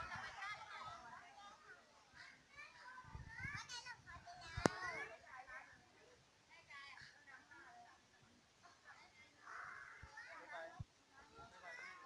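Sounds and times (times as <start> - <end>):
distant children chattering: 8.6 - 12.0.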